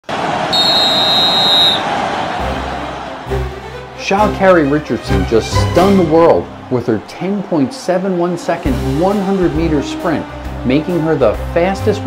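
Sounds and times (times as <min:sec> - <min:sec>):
background noise rush: 0:00.0 - 0:04.0
referee's whistle blast: 0:00.5 - 0:01.9.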